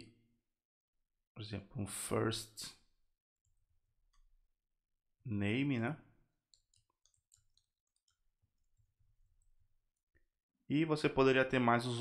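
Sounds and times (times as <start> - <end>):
keyboard typing: 6.5 - 9.5.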